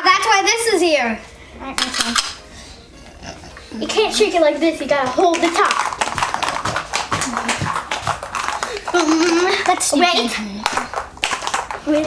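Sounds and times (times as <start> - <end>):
ice rattling in cocktail shaker: 5.4 - 9.9.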